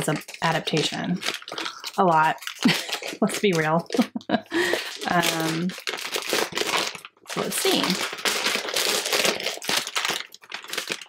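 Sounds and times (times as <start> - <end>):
wrapping paper crinkling and tearing: 0.0 - 11.0.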